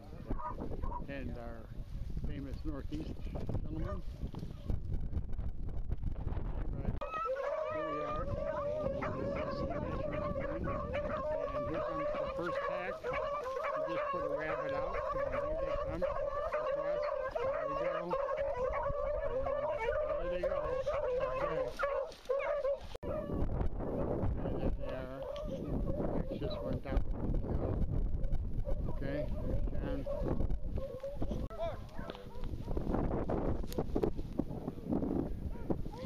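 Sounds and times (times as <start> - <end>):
dogs baying: 0.1 - 1.1, 3.8 - 4.0, 7.0 - 23.5, 24.8 - 26.8, 28.2 - 32.9, 35.5 - 36.0.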